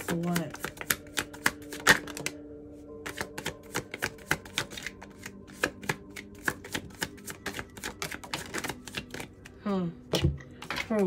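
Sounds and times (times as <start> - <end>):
cards being shuffled: 0.0 - 2.4, 3.0 - 9.5.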